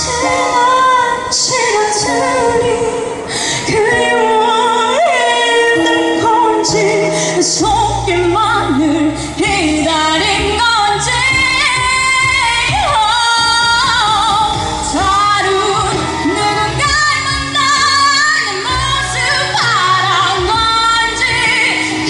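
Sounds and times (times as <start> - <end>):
amplified accompanying music: 0.0 - 22.0
woman singing a ballad: 0.0 - 22.0.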